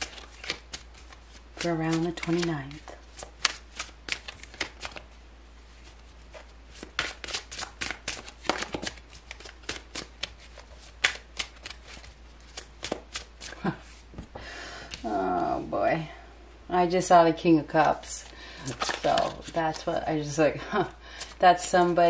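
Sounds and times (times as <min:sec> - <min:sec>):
cards being shuffled: 0:00.0 - 0:14.2, 0:17.8 - 0:19.9.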